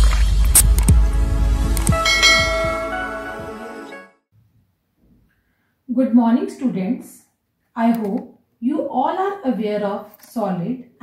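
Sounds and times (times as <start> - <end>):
bell-like chime: 2.0 - 3.4.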